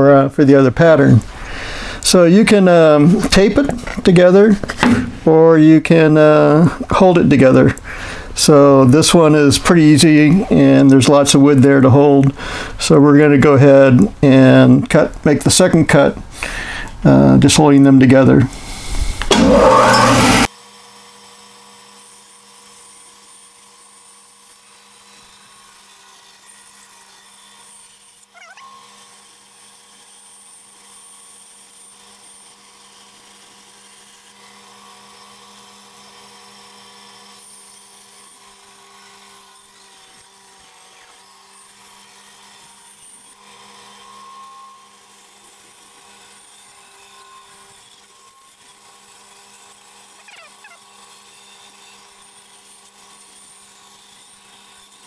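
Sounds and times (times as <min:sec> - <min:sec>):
bandsaw humming: 0:00.8 - 0:12.8, 0:15.9 - 0:20.5.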